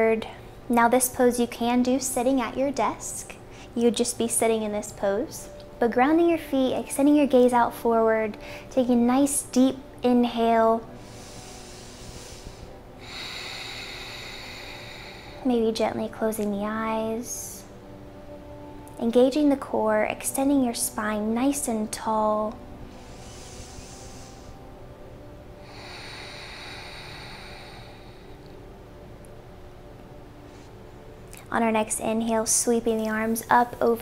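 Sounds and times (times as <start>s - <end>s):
low steady hum: 0.0s - 34.0s
woman breathing through nose: 10.9s - 15.5s, 22.8s - 24.7s, 25.6s - 28.6s.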